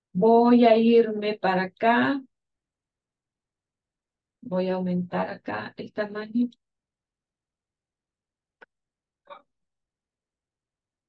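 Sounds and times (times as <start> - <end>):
woman speaking: 0.2 - 2.3, 4.4 - 6.6.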